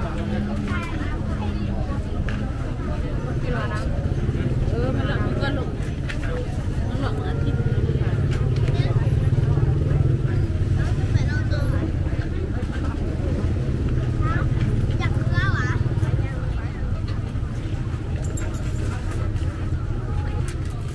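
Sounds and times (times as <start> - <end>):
crowd of people talking: 0.0 - 20.9.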